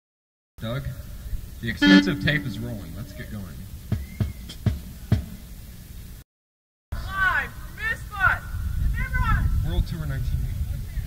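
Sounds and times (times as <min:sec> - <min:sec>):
steady low rumble: 0:02.0 - 0:03.8.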